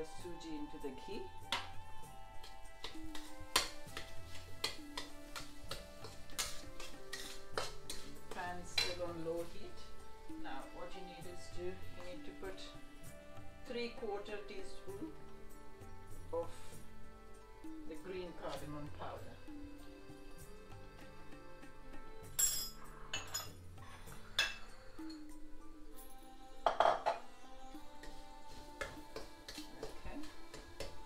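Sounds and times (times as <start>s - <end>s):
background music: 0.0s - 31.0s
metal spatula scraping a pan: 2.8s - 9.2s
dish and utensil clatter: 22.4s - 23.6s, 26.7s - 27.2s.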